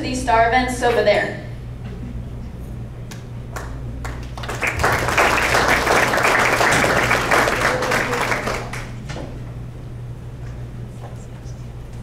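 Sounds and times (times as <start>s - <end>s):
audience applauding: 3.5s - 9.0s.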